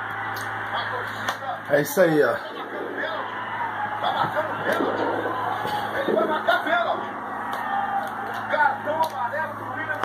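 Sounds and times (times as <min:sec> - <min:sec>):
low steady hum: 0:00.0 - 0:10.0
television football commentary: 0:00.0 - 0:10.0.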